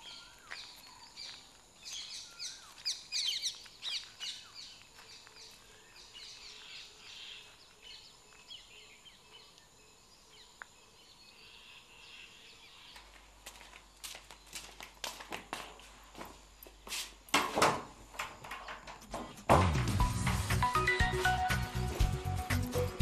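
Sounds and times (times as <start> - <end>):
birds chirping and calling: 0.0 - 13.2.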